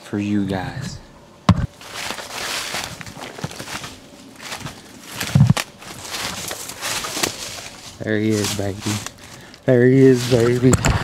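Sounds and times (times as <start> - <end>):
sharp thumps: 1.4 - 1.8, 5.1 - 6.6
footsteps crunching through leaves: 1.6 - 11.0.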